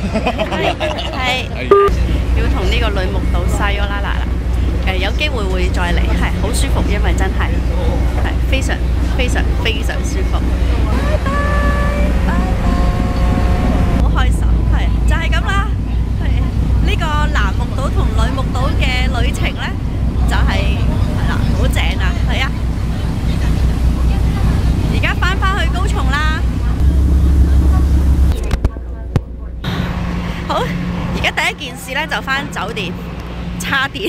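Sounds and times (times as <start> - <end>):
people talking: 0.0 - 33.0, 33.6 - 34.0
ferry engine rumbling: 0.0 - 34.0
held tones: 1.7 - 2.0.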